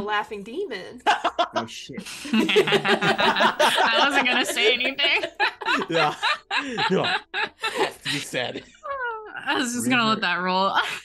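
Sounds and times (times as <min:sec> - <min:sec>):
group of people laughing: 0:01.1 - 0:08.8.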